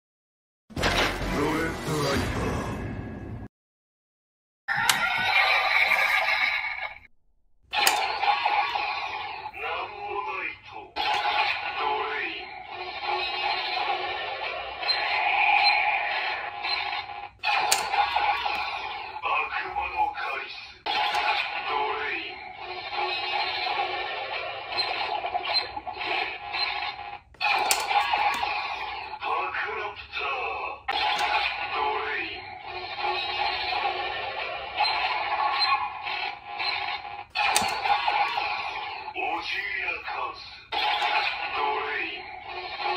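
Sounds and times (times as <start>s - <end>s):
toy belt electronic sound effects: 4.7s - 7.0s, 7.7s - 9.8s, 11.0s - 29.4s, 30.9s - 40.0s, 40.7s - 42.9s
synthesized voice call: 9.5s - 13.3s, 19.0s - 23.2s, 29.2s - 33.3s, 38.2s - 42.9s.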